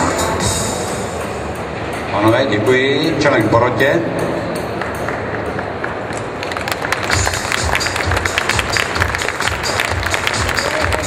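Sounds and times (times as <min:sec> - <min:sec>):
stage music: 0:00.0 - 0:11.0.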